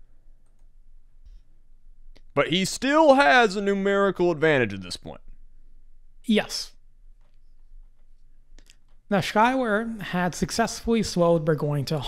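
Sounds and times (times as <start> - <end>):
faint low hum: 0.0 - 12.0
faint clicks: 0.4 - 1.5, 7.2 - 9.1.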